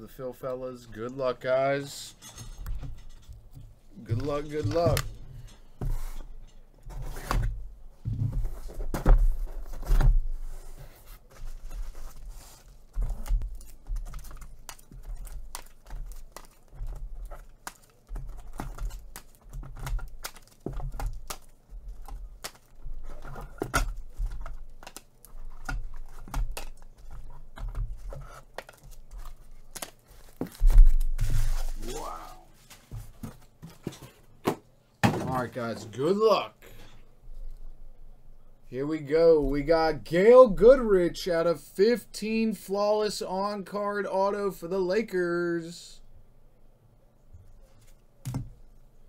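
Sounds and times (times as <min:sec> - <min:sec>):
cardboard box being unpacked: 0:08.3 - 0:34.2
bubble wrap rustling: 0:09.4 - 0:33.9.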